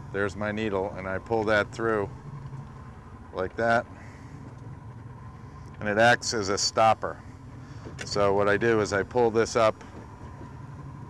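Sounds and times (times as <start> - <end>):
boat motor idling: 0.0 - 11.0.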